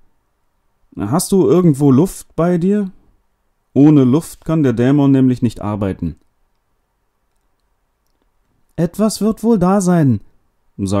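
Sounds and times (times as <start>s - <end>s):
man narrating: 1.0s - 3.0s, 3.8s - 6.2s, 8.8s - 11.0s
faint tiny clicks: 6.2s - 8.8s.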